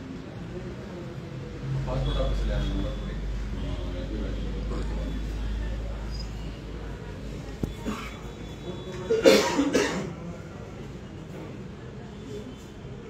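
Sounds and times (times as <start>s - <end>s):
faint room murmur: 0.0s - 13.0s
person coughing: 7.8s - 8.2s, 9.1s - 10.2s.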